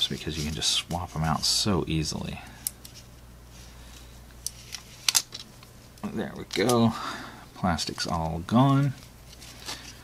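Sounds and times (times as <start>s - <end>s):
plastic film crinkling and clicking: 4.4s - 6.9s.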